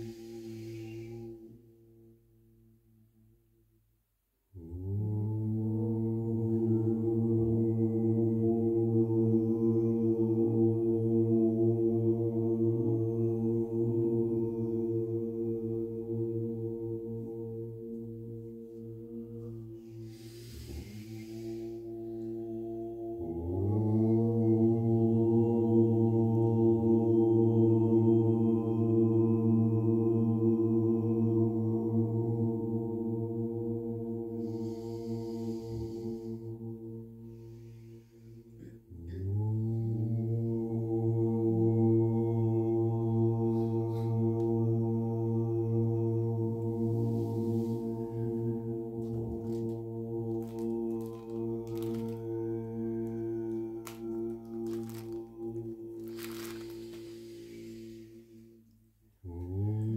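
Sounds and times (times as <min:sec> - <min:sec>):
voices chanting a low note: 0:00.0 - 0:03.2, 0:04.5 - 0:59.9
steady low drone: 0:00.0 - 0:03.5, 0:04.6 - 0:59.9.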